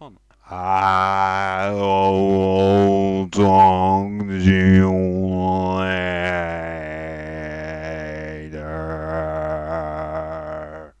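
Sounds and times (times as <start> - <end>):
low voice-like drone: 0.5 - 11.0.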